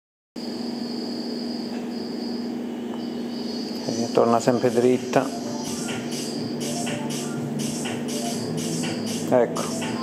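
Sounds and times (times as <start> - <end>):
high-pitched whine: 0.4 - 10.0
steady background hum: 0.4 - 10.0.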